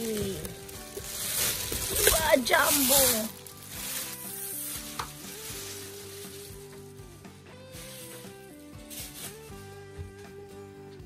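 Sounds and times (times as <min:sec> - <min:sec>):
plush toy wrapping rustling: 0:00.0 - 0:09.8
soft background music: 0:00.0 - 0:11.0.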